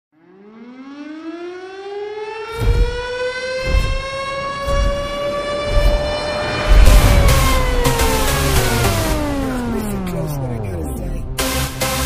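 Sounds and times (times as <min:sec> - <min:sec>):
siren tone winding up: 0:00.2 - 0:10.9
deep bass thumps: 0:02.6 - 0:09.6.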